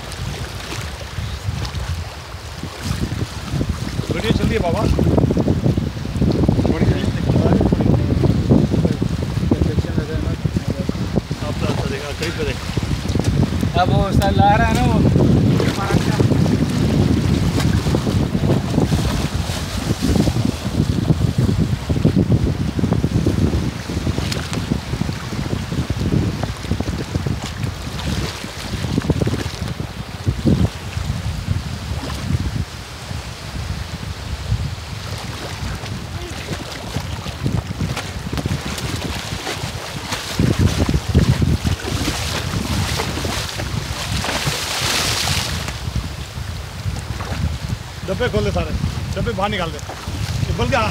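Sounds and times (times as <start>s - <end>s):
rush of open water: 0.0s - 50.9s
wind buffeting microphone: 0.0s - 50.9s.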